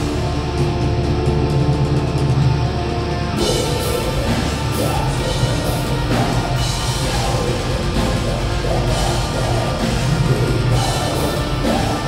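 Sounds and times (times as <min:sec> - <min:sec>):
distorted electric guitars: 0:00.0 - 0:12.0
metal band playing: 0:00.0 - 0:12.0.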